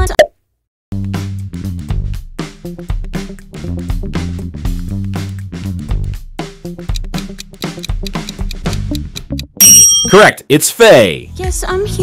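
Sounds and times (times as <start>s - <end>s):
instrumental backing track: 1.2s - 10.4s.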